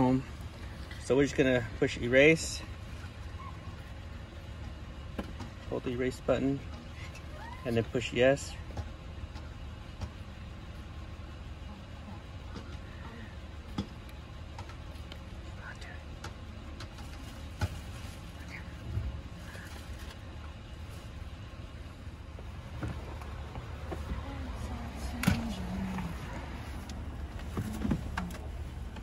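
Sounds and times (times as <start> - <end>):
car engine idling: 0.0 - 29.0.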